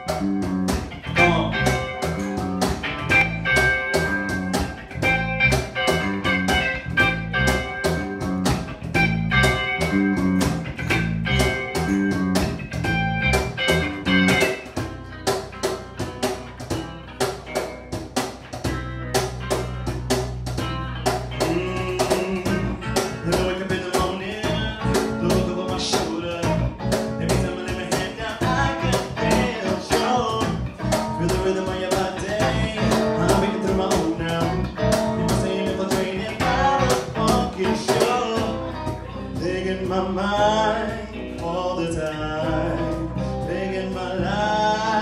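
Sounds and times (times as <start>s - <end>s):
bass guitar: 0.0s - 45.0s
cajon beat: 0.0s - 45.0s
electric guitar: 0.0s - 45.0s.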